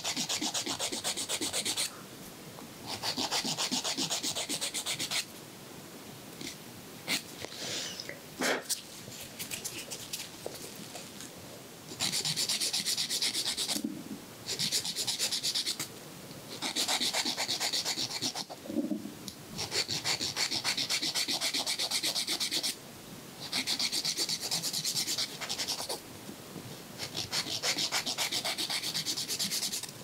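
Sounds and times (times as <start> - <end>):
nail file rasping on fingernail: 0.0 - 1.9, 2.9 - 5.3, 12.0 - 13.8, 14.5 - 15.9, 16.5 - 18.6, 19.6 - 22.8, 23.4 - 26.0, 27.0 - 29.9.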